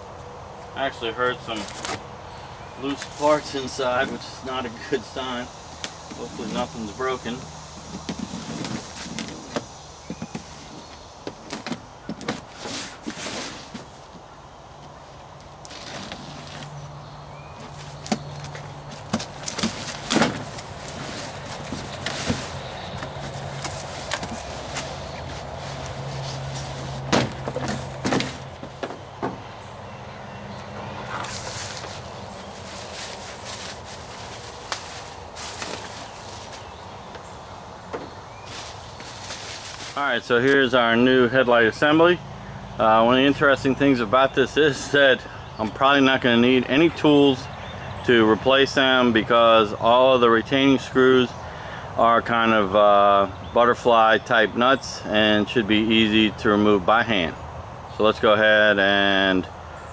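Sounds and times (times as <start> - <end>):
high insect drone: 0.0 - 59.9
cardboard scraping and folding: 6.1 - 14.2, 15.7 - 16.8, 17.4 - 29.0, 31.0 - 37.0, 38.4 - 40.0
plastic packing crinkling: 31.3 - 36.7.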